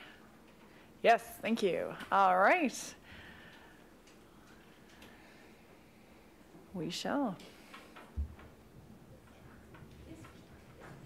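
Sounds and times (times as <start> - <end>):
meeting room background noise: 0.0 - 11.0.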